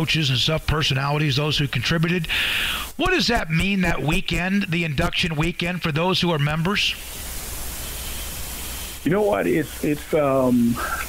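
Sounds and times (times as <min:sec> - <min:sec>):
static hiss: 0:00.0 - 0:11.0.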